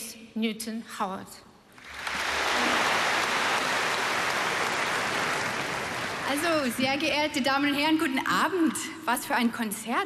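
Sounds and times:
audience applauding: 1.8s - 6.9s.

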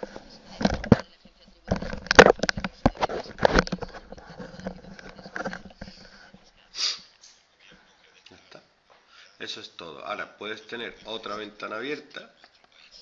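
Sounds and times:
broadcast voice from speakers: 0.0s - 13.0s.

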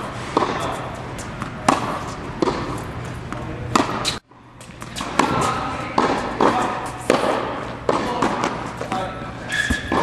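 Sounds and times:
tennis ball bouncing: 0.0s - 9.1s
tennis ball hit by rackets: 0.3s - 4.2s, 4.8s - 9.1s.

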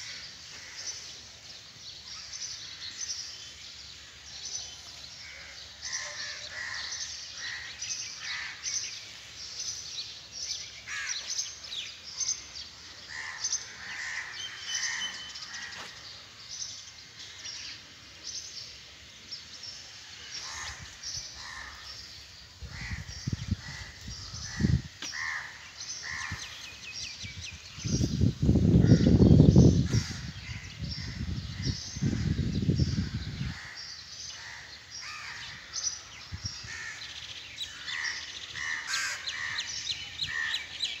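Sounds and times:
birds calling: 0.0s - 41.0s.

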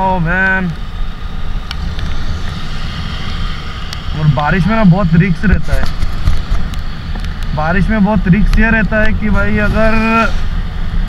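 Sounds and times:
motorcycle engine: 0.0s - 11.0s
wind and road noise: 0.0s - 11.0s.

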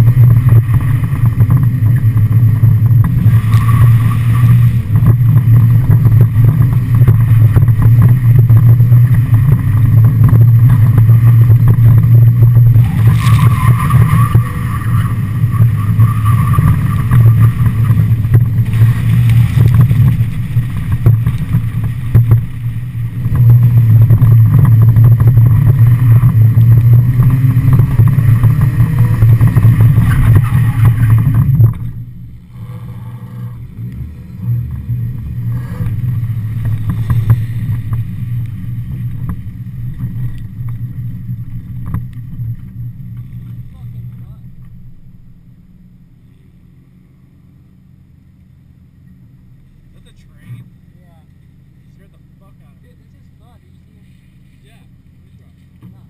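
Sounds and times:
car engine at high revs: 0.0s - 56.0s.

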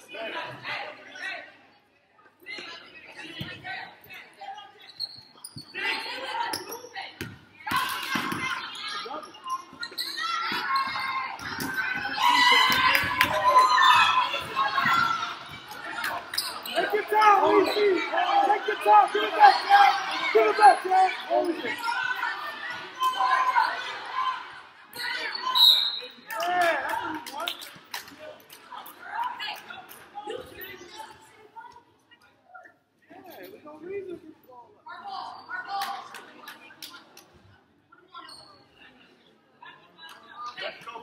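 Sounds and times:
spectators' voices in echoing hall: 0.0s - 41.0s
spectators shouting: 11.9s - 25.6s.

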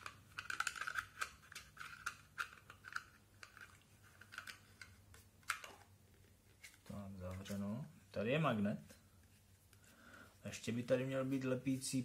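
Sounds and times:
plastic housing clicks: 0.0s - 5.9s.

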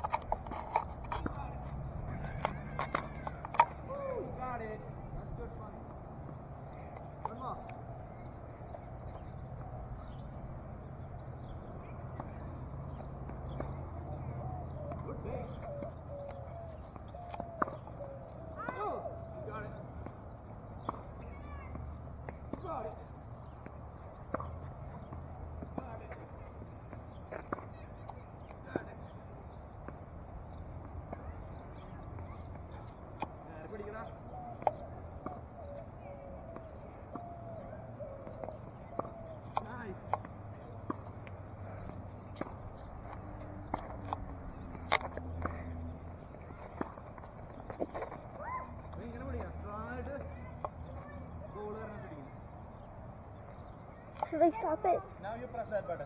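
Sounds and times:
tennis balls struck by rackets: 10.6s - 51.0s.

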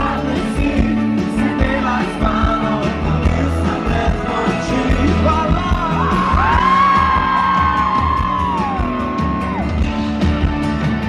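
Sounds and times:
live rock band with vocals: 0.0s - 11.0s.

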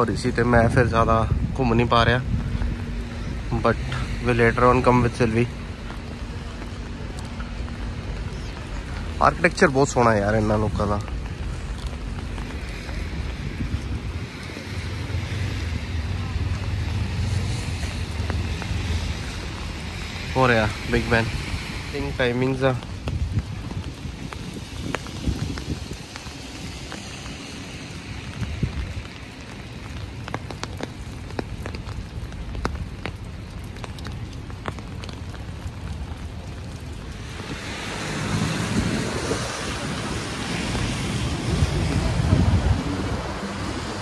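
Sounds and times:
steady rain: 0.0s - 44.0s
ticks of raindrops: 0.0s - 44.0s
wind rumble on microphone: 0.0s - 44.0s.

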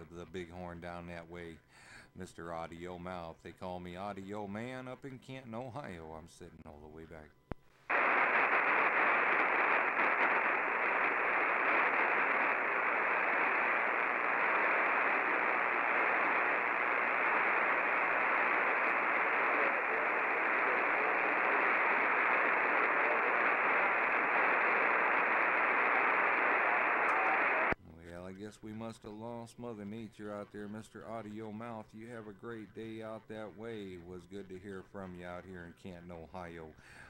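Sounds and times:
radio static hiss: 7.7s - 27.8s.

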